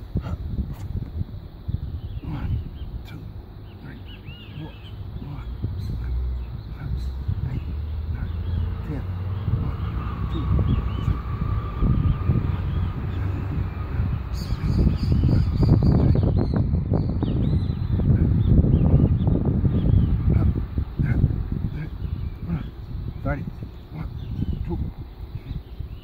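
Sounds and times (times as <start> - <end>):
birds chirping: 0.0 - 26.0
low rumble on microphone: 0.0 - 26.0.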